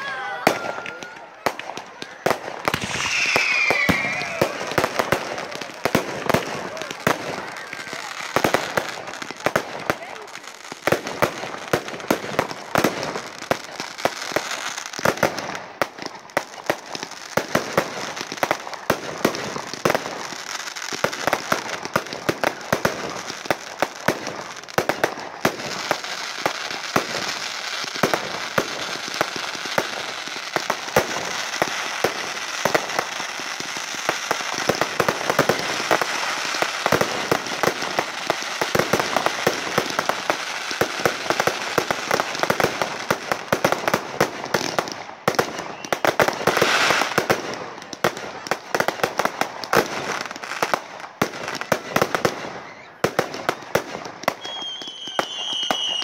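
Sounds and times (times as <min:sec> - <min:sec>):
fireworks bangs: 0:00.0 - 0:56.0
crackling of bursting shells: 0:02.7 - 0:05.6.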